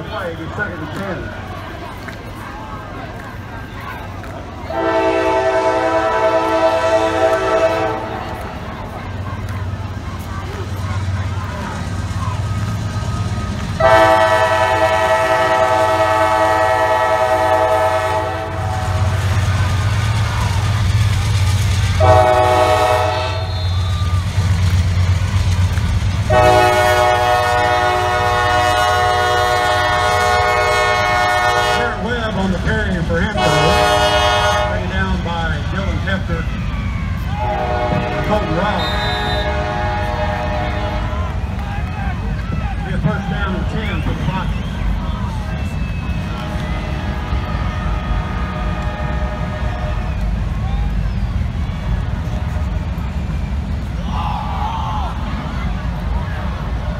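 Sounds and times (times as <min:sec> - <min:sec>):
diesel engines rumbling: 0:00.0 - 0:56.9
locomotive horn blasts: 0:04.7 - 0:08.4, 0:13.8 - 0:19.2, 0:22.0 - 0:24.0, 0:26.3 - 0:32.0, 0:33.4 - 0:34.9, 0:37.4 - 0:41.2, 0:46.2 - 0:50.2.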